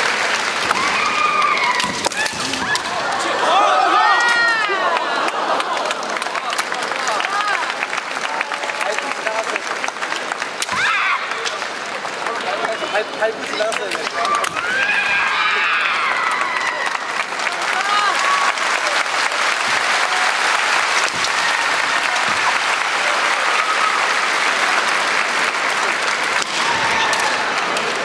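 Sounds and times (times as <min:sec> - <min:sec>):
audience applauding: 0:00.0 - 0:28.0.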